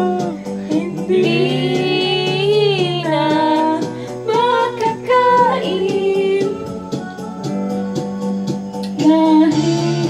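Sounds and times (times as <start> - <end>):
backing track with steady beat: 0.0 - 10.0
woman singing into microphone: 0.0 - 10.0.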